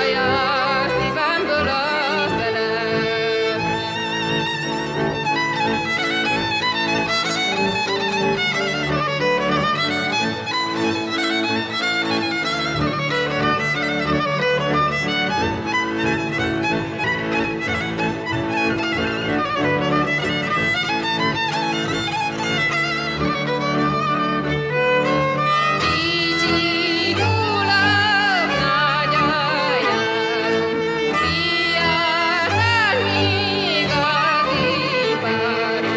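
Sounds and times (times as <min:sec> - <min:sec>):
woman singing: 0:00.0 - 0:03.6, 0:25.8 - 0:35.9
fiddle playing fast melody: 0:00.0 - 0:35.9
low string accompaniment: 0:00.0 - 0:35.9.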